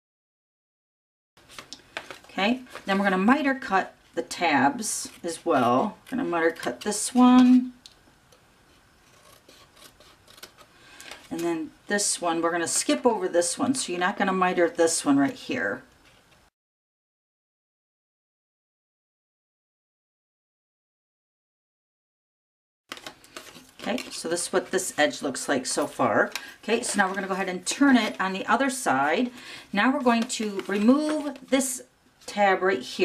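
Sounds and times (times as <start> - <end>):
cardstock rustling: 1.4 - 3.1, 22.9 - 31.7
paper rubbing: 9.0 - 10.7.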